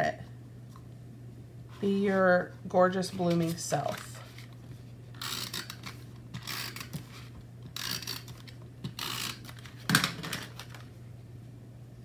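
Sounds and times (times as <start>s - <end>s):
faint steady hum: 0.0s - 12.0s
paper rustling: 3.0s - 4.8s.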